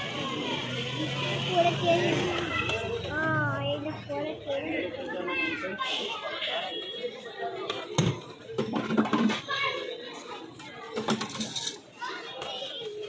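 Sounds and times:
background street voices: 0.0s - 13.0s.

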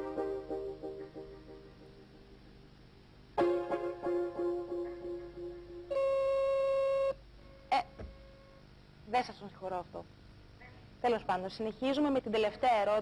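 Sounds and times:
steady buzzer tone: 5.8s - 8.6s.

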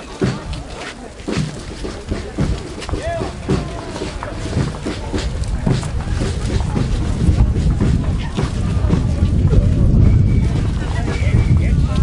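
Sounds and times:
crowd chatter: 0.0s - 12.0s
wind rumble on microphone: 2.0s - 12.0s.

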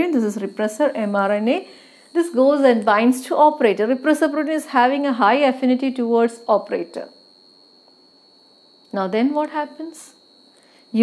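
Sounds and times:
woman speaking: 0.0s - 7.2s, 8.9s - 10.2s
faint high-pitched whine: 0.0s - 11.0s.

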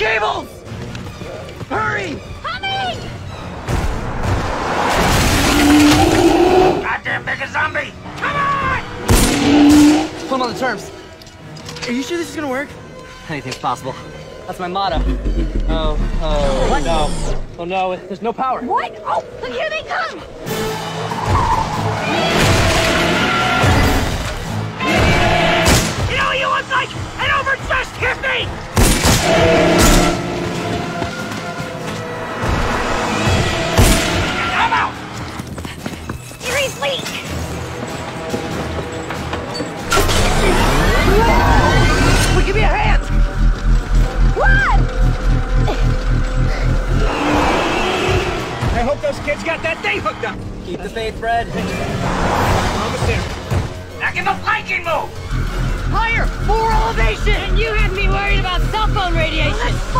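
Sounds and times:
dramatic film music: 0.0s - 59.9s
vehicle driving up: 3.3s - 6.6s.

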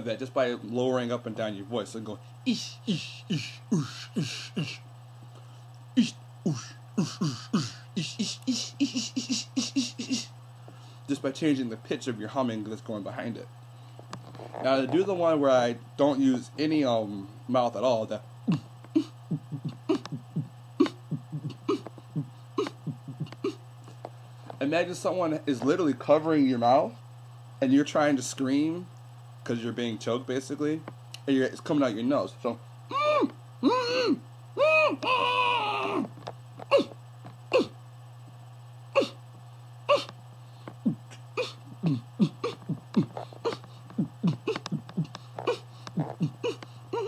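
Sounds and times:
steady low hum: 0.0s - 47.0s
nasal beatboxing beat: 2.5s - 4.8s, 6.0s - 10.3s, 18.4s - 23.6s, 36.6s - 37.8s, 39.9s - 47.0s.

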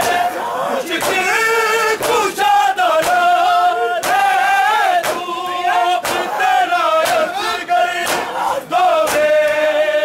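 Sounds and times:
men chanting in unison: 0.0s - 10.0s
chest-beating slaps: 0.9s - 1.4s, 2.0s - 3.4s, 4.0s - 4.4s, 5.0s - 6.4s, 7.0s - 7.3s, 8.0s - 8.4s, 9.0s - 9.6s.

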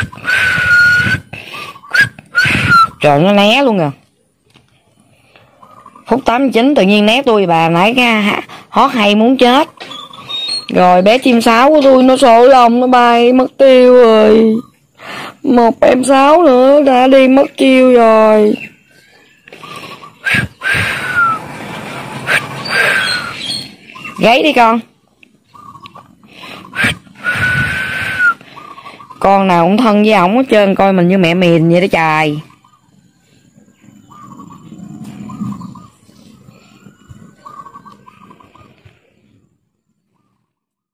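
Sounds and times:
falling whistled bird calls: 0.0s - 3.6s, 9.4s - 11.4s, 18.4s - 24.8s, 25.5s - 29.6s, 32.4s - 39.4s
background hiss: 0.0s - 40.3s
low rumbling background noise: 15.7s - 40.2s
dove cooing: 19.2s - 24.4s, 25.5s - 29.2s, 33.7s - 39.2s.

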